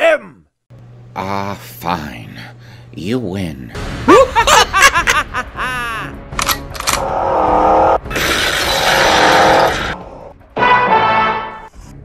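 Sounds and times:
music: 3.7s - 12.0s
people laughing: 4.1s - 6.2s.

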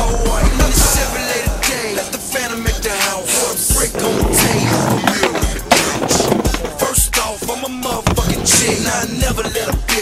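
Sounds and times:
hip hop beat: 0.0s - 10.0s
skateboard clack: 0.0s - 10.0s
skateboard wheels rolling on pavement: 0.0s - 10.0s.

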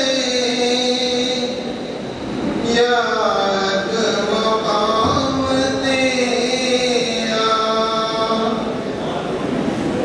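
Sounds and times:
man chanting into a microphone: 0.0s - 1.9s, 2.6s - 9.2s.

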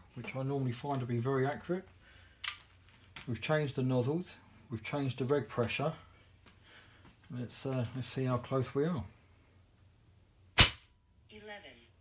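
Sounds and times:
air rifle shot: 10.6s - 10.8s.

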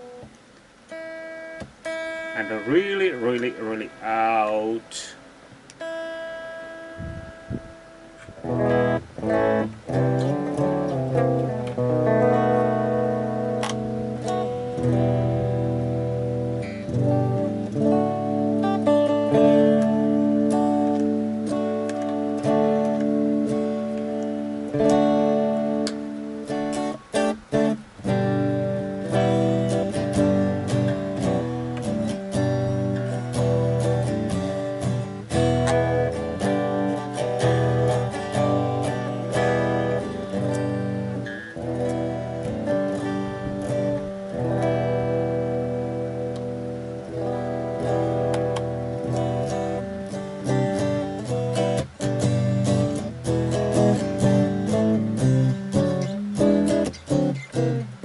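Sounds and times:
choppy guitar stabs: 0.0s - 58.0s
electric guitar clean tone: 0.0s - 58.0s.

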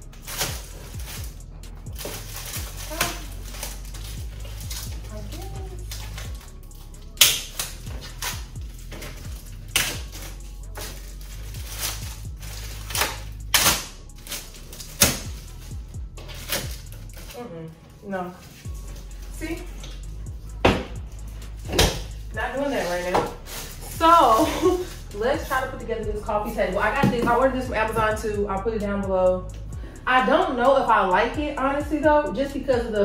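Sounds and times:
plastic wrapping crinkling: 0.1s - 17.3s, 21.2s - 25.5s.

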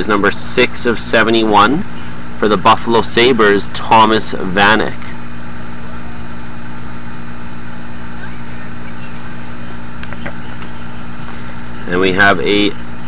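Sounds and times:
machinery hum and drone: 0.0s - 13.0s.

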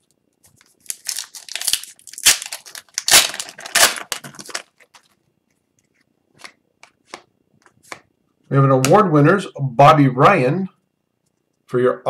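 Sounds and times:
foil wrapper crinkling and tearing: 0.0s - 5.2s.

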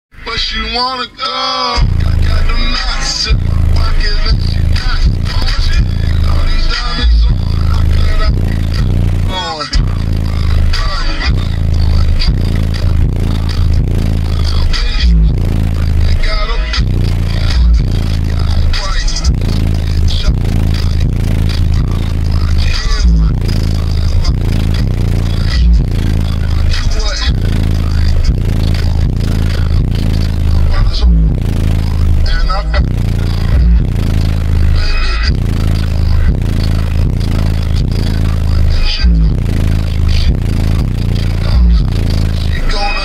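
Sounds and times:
loud music with heavy bass: 0.1s - 43.0s.

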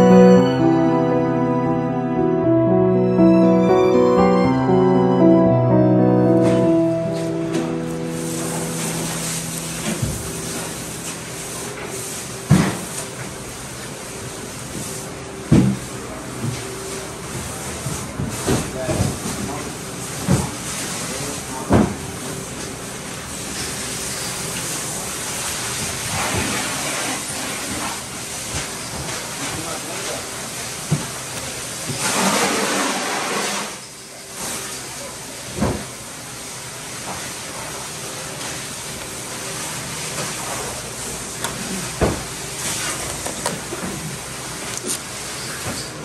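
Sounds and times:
background hiss and hum: 4.1s - 18.6s.

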